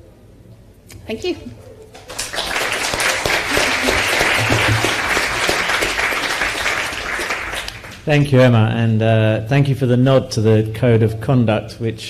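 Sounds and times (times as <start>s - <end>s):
audience applauding: 1.9s - 8.3s.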